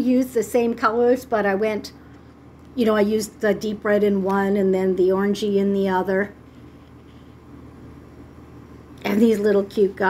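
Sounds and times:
faint low hum: 0.0s - 10.0s
light hiss: 6.3s - 10.0s.

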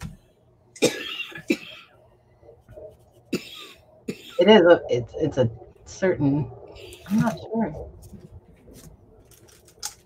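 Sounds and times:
person coughing: 0.8s - 2.0s, 3.3s - 4.5s.

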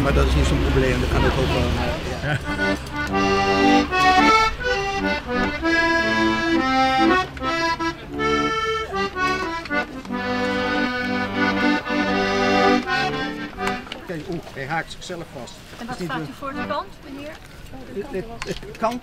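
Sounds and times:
button accordion playing a tune: 2.2s - 14.3s, 15.9s - 17.3s.

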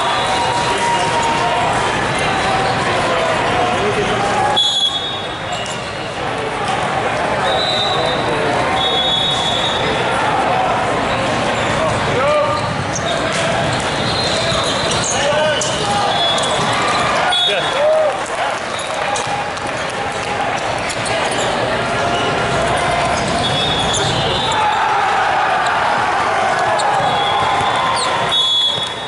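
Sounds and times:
voices and shouts: 6.4s - 29.0s.

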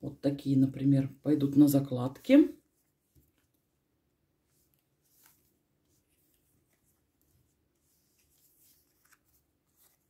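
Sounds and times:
paper stickers rustling: 4.6s - 10.0s.

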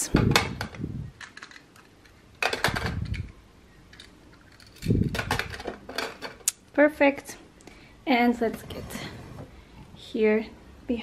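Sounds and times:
plastic cutters clattering: 3.9s - 6.6s.

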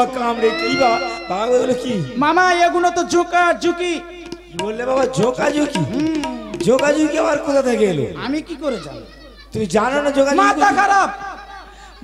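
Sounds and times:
man letting out long cry: 0.4s - 2.2s.

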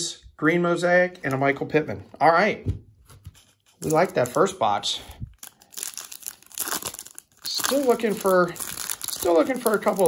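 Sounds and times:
foil wrapper crinkling: 3.7s - 4.7s, 5.3s - 10.0s.

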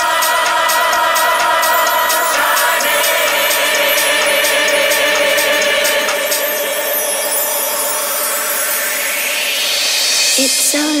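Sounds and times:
hissing noise sweep: 0.0s - 11.0s
sustained synth pad: 0.0s - 11.0s.

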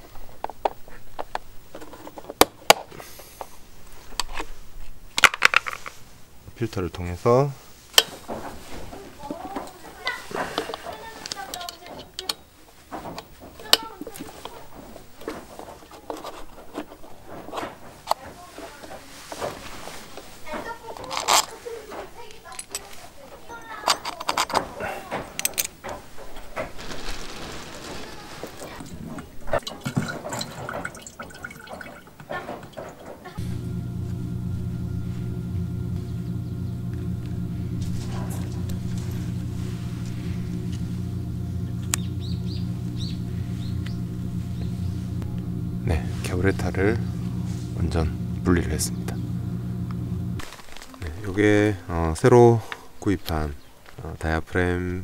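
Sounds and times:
plastic and metal parts clicking: 10.6s - 12.4s, 20.9s - 21.6s, 23.8s - 26.0s
low hum of held tones: 33.4s - 50.4s.

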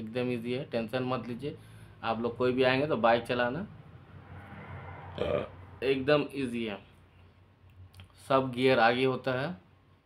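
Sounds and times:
man talking: 0.0s - 3.7s, 5.2s - 6.9s
faint room hum: 0.0s - 10.0s
short vocal sound: 5.0s - 5.6s.

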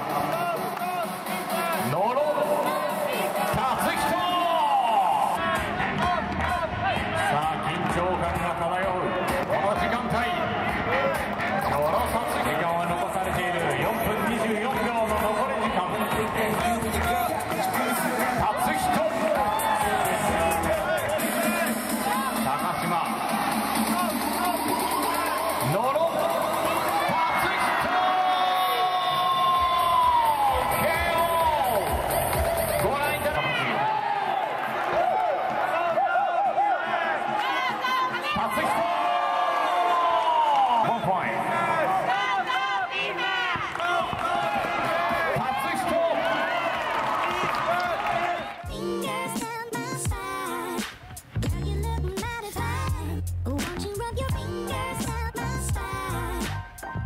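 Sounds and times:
crowd cheering and shouting: 0.0s - 51.3s
background music: 0.0s - 57.0s.

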